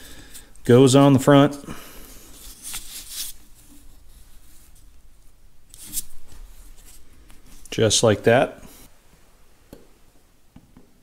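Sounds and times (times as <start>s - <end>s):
scratchy rubbing: 2.3s - 5.0s.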